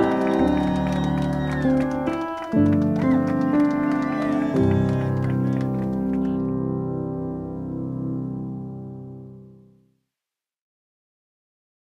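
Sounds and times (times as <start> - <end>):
music: 0.0 - 10.2.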